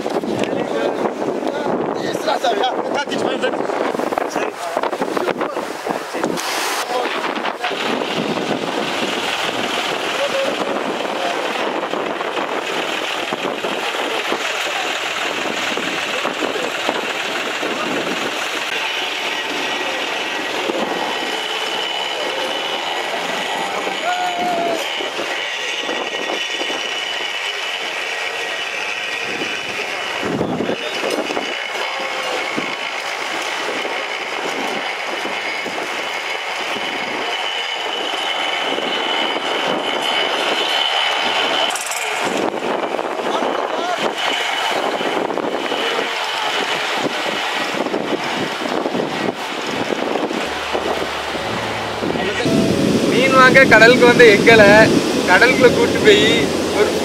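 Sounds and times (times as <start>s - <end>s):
surf breaking: 3.4s - 32.7s
tractor engine running: 6.2s - 57.0s
men's voices: 50.4s - 57.0s.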